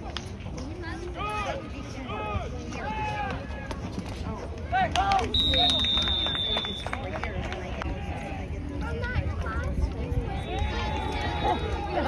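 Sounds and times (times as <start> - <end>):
whistle blast: 5.3 - 7.0.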